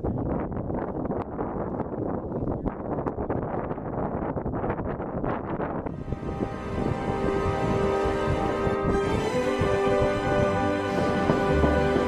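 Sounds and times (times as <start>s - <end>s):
wind blowing across microphone: 0.0s - 12.0s.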